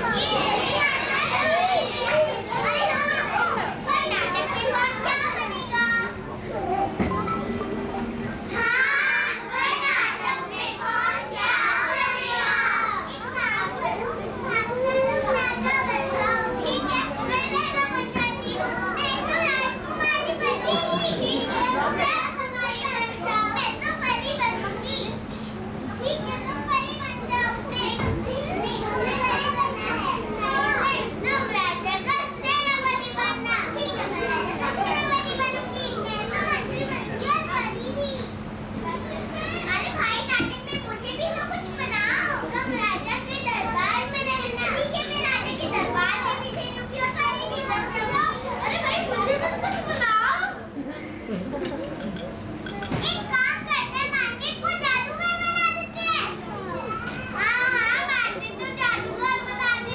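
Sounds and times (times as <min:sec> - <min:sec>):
children chattering: 0:00.0 - 0:59.9.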